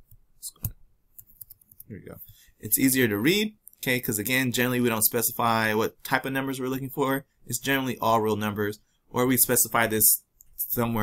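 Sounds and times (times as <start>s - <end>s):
computer mouse clicks: 0.0s - 1.9s.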